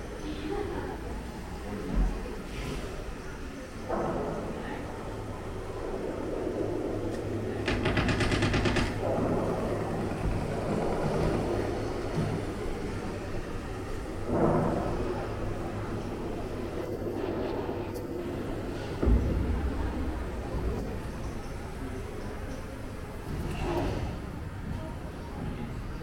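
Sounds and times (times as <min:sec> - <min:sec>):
steady low rumble: 0:00.0 - 0:25.1
recorded machine-gun fire: 0:07.6 - 0:09.8.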